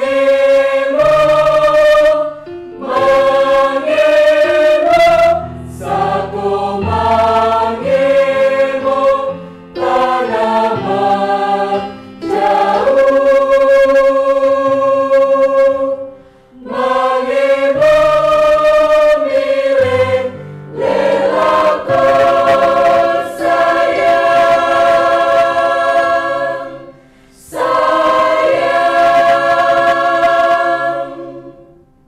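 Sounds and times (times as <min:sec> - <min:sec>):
mixed choir singing: 0:00.0 - 0:31.8.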